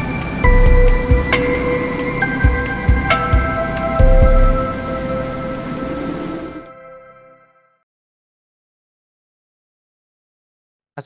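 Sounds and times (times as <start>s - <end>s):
rushing rain-like noise: 0.0s - 6.7s
held musical chord: 0.0s - 7.6s.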